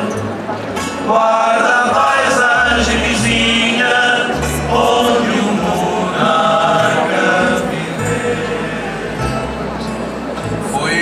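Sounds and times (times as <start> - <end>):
double bass: 0.0 - 11.0
mandolins and guitars: 0.0 - 11.0
male chorus singing: 1.0 - 10.0, 10.6 - 11.0.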